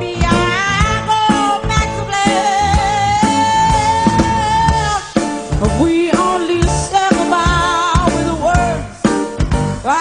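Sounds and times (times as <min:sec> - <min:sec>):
band with drums and guitar: 0:00.0 - 0:10.0.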